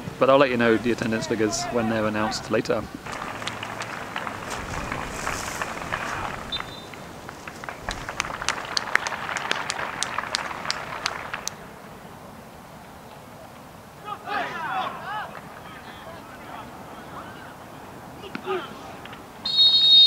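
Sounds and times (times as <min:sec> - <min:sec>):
open-air crowd noise: 0:00.0 - 0:20.0
crowd applause: 0:03.0 - 0:11.9.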